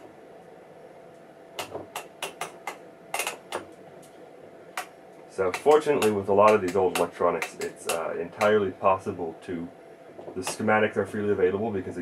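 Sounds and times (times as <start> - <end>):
faint electrical hum: 0.0 - 12.0
sharp mechanical clicks: 5.5 - 8.6.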